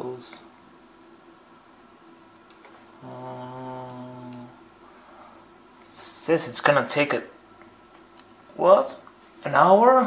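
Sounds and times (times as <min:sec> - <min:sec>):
man saying um: 0:03.0 - 0:04.6.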